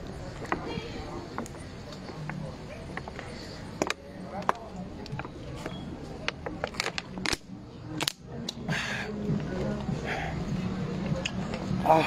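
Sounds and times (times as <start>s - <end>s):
background music: 4.7s - 12.0s
plastic bottle crackling: 6.3s - 8.2s.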